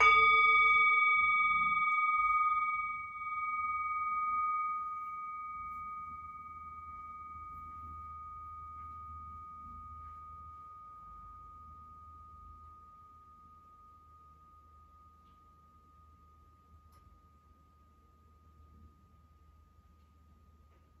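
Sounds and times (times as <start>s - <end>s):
singing bowl ringing: 0.0s - 21.0s.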